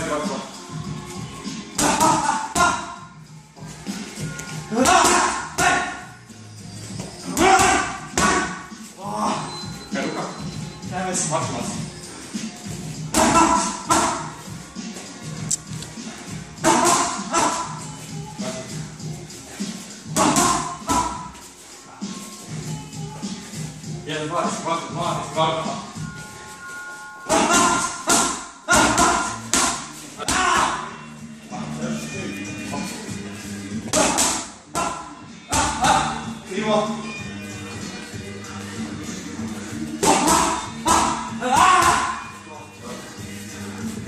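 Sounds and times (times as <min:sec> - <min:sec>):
background music: 0:00.0 - 0:44.0
punches and kicks hitting pads: 0:01.8 - 0:02.8, 0:04.7 - 0:06.0, 0:07.3 - 0:08.6, 0:13.1 - 0:14.3, 0:20.2 - 0:21.3, 0:27.3 - 0:30.8, 0:33.9 - 0:36.1, 0:40.0 - 0:42.2
boxing gloves striking mitts: 0:04.8 - 0:06.0, 0:07.4 - 0:08.6, 0:16.6 - 0:17.7, 0:20.2 - 0:21.3, 0:27.3 - 0:30.8, 0:33.9 - 0:36.1, 0:40.0 - 0:42.2.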